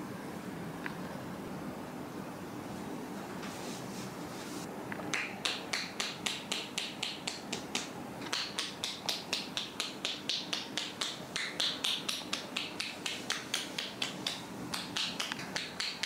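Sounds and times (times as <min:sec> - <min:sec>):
hands tapping on head: 0:05.1 - 0:16.0.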